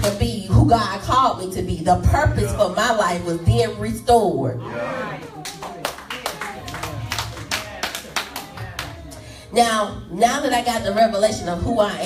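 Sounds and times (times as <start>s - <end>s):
people clapping: 5.1s - 9.2s.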